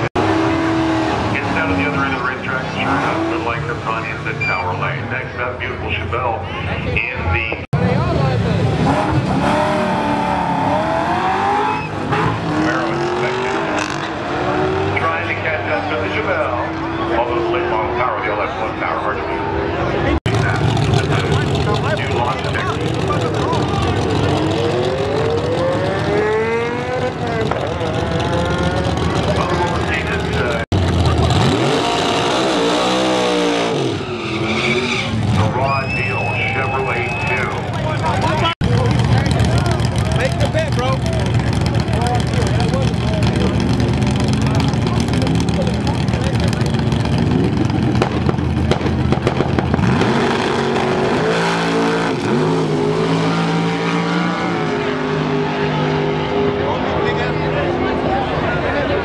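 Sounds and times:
car engine revving: 0.0s - 6.0s, 7.8s - 35.6s, 36.3s - 59.0s
tyre squeal: 11.5s - 12.3s, 33.8s - 37.6s.

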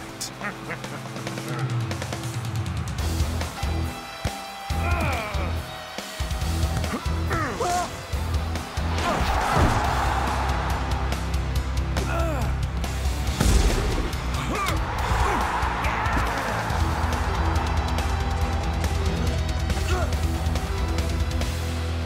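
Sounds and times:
action music with heavy bass: 0.0s - 22.0s.

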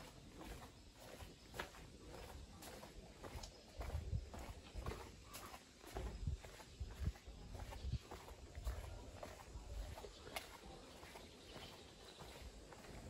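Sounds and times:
footsteps on concrete: 0.0s - 13.0s
small scuffs and clicks: 2.7s - 4.0s.

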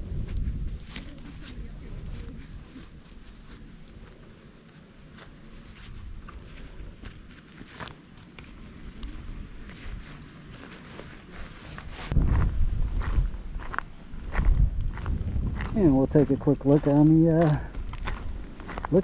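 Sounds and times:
low rumble on microphone: 0.0s - 4.2s, 8.6s - 16.4s
footsteps crunching on gravel: 0.1s - 19.0s.

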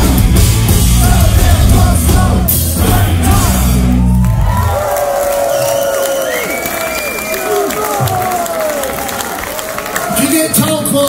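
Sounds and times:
punk rock band final chord: 0.0s - 4.0s
crowd cheering and whooping: 0.8s - 11.0s.

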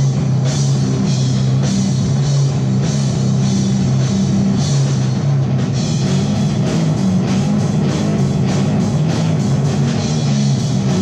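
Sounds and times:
drum kit: 0.0s - 11.0s
electric bass: 0.0s - 11.0s
electric guitar: 0.0s - 11.0s.

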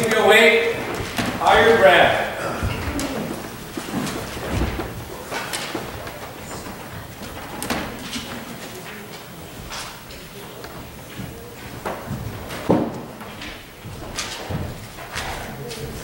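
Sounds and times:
faint murmured voices: 0.0s - 16.0s
knocks clicks and rustles of handling books: 0.0s - 16.0s.

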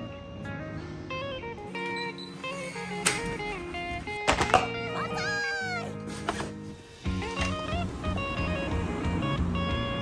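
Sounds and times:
guitar music: 0.0s - 10.0s
cat meowing: 4.8s - 6.0s.

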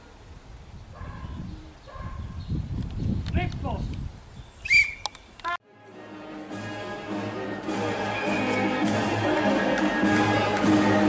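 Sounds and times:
faint band music: 5.6s - 11.0s.

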